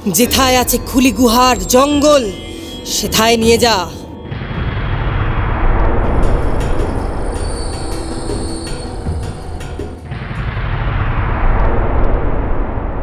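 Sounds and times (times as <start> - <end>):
high ringing tones: 0.0 - 10.2
dense rumbling: 3.6 - 13.0.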